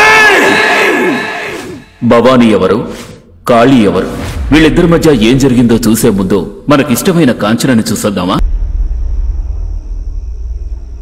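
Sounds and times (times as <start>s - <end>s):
steady low rumble: 8.4s - 11.0s.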